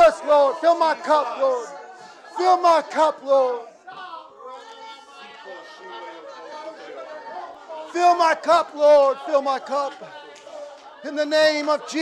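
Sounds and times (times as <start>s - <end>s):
congregation praying aloud: 0.0s - 12.0s.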